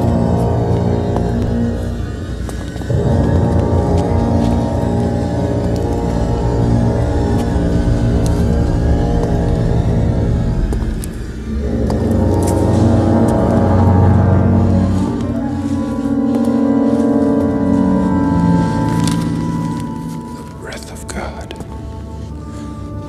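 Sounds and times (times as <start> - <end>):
tense orchestral score: 0.0 - 23.0.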